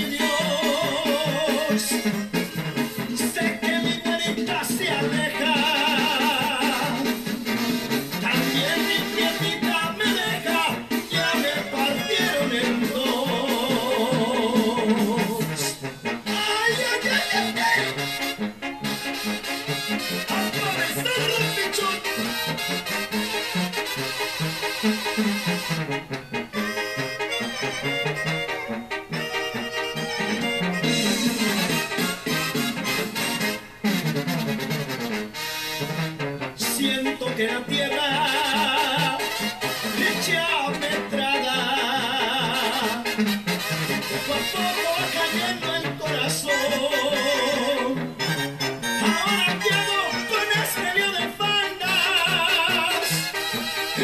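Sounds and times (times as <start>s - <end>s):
brass band on television: 0.0s - 54.0s.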